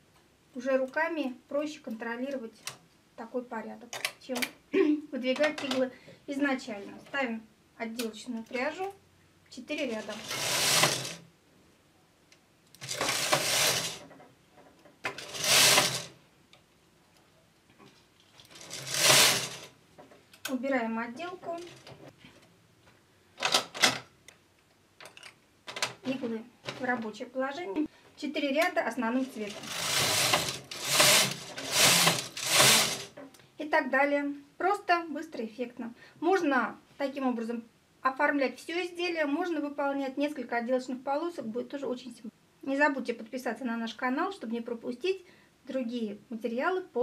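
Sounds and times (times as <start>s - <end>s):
person speaking: 3.2s - 11.2s, 20.4s - 21.9s, 26.0s - 33.1s
knitting machine carriage rattling: 9.8s - 11.2s, 12.8s - 14.2s, 15.1s - 16.2s, 18.4s - 19.7s, 29.3s - 33.2s.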